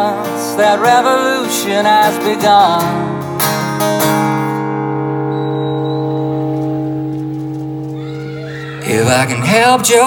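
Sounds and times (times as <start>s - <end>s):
acoustic guitar strumming: 0.0s - 10.0s
person singing: 8.7s - 10.0s.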